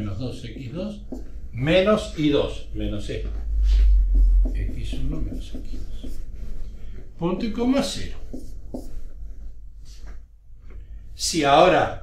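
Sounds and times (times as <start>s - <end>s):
marker pen writing on whiteboard: 0.0s - 2.5s, 3.7s - 10.2s.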